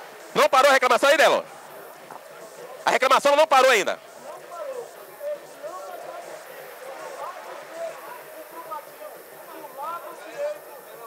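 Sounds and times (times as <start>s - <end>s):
distant voices shouting and calling: 0.0s - 11.0s.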